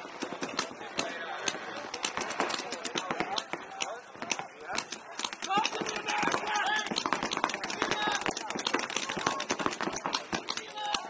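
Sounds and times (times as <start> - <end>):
paintball markers popping: 0.2 - 11.0.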